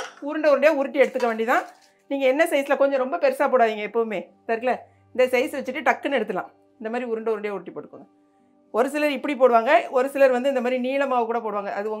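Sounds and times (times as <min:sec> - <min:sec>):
woman speaking: 0:00.2 - 0:08.1, 0:08.8 - 0:12.0.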